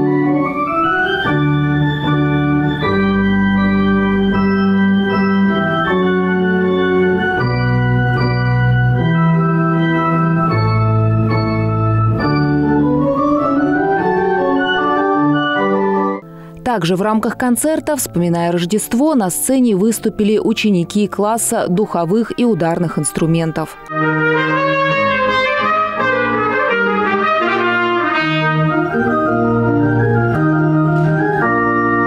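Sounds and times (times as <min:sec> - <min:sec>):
pipe organ playing slow chords: 0:00.0 - 0:16.6, 0:23.8 - 0:32.0.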